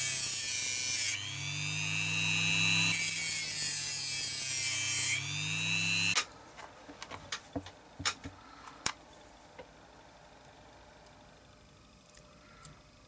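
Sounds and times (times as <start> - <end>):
rotary tool motor whine: 0.0 - 6.2.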